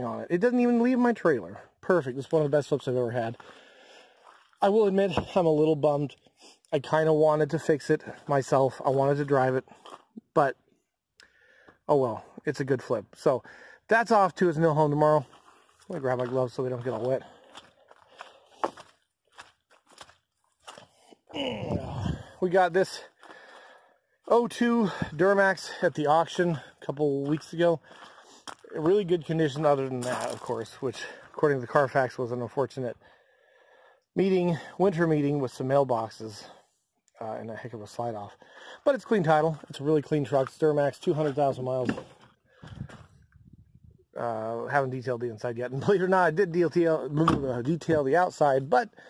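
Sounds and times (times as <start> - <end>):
footsteps on wet grass: 3.3 - 5.0, 15.2 - 22.6, 27.2 - 31.3.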